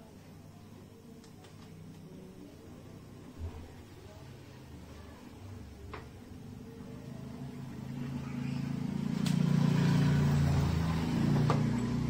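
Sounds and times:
vehicle engine running: 7.1 - 12.0.

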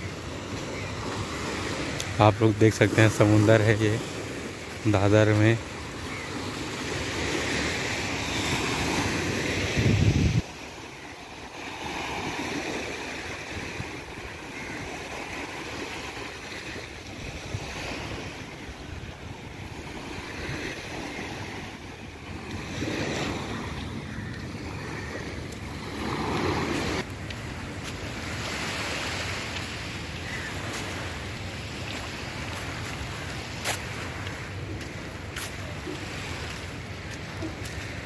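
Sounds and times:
small waves breaking on beach: 0.0 - 38.0
wind on microphone: 8.5 - 10.6.

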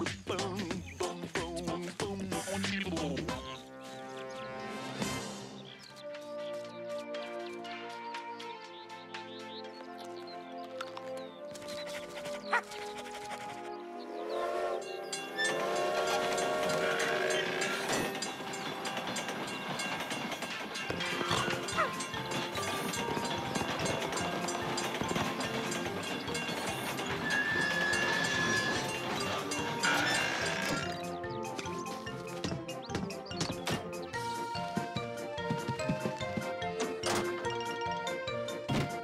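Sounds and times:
background music: 0.0 - 39.0
cartoon train running: 11.8 - 38.7
train whistle blast: 14.0 - 18.1.

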